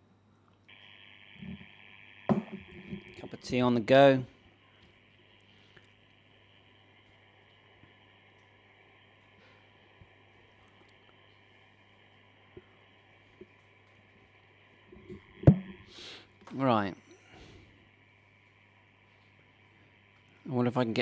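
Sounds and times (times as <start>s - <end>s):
faint low hum and hiss: 0.0s - 21.0s.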